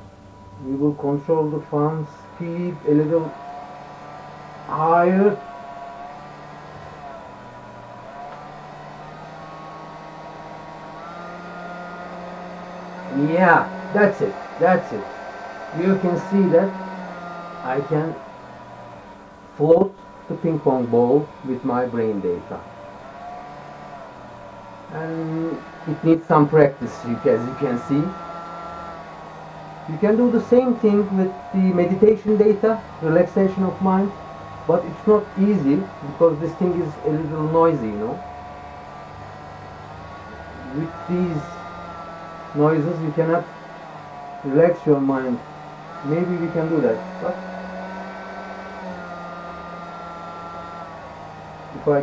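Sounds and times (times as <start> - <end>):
hair dryer fan motor whine: 0.0 - 52.0.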